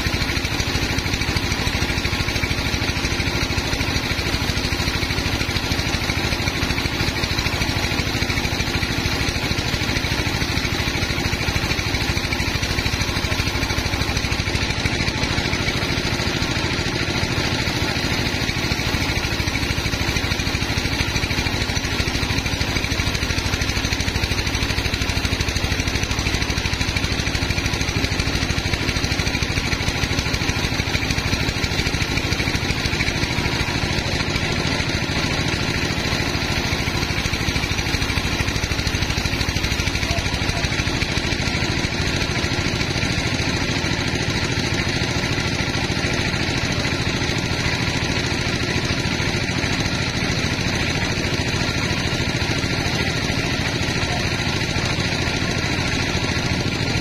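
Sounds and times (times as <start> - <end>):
band sawmill droning: 0.0 - 57.0.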